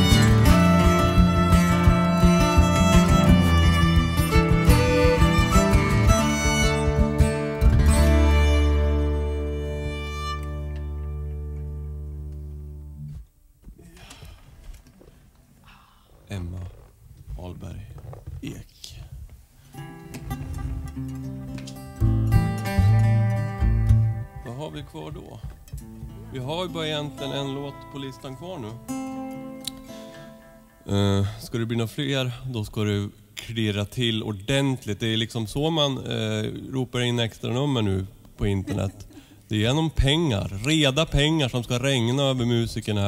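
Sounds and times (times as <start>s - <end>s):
guitar and violin chord ringing: 0.0s - 12.4s, 20.3s - 25.1s
acoustic guitar chord ringing: 19.8s - 25.1s, 25.7s - 30.9s
man's voice: 26.3s - 28.8s, 30.9s - 43.0s.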